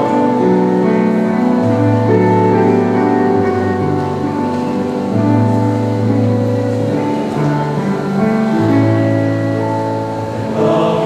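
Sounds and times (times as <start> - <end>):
piano playing sustained chords: 0.0 - 11.0.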